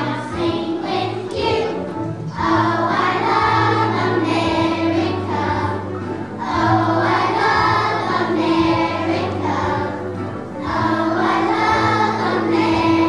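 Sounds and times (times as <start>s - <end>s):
children's choir singing: 0.0s - 13.0s
musical accompaniment: 0.0s - 13.0s.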